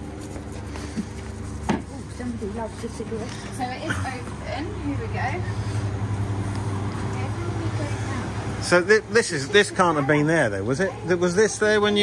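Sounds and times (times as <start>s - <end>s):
condenser fans humming: 0.0s - 12.0s.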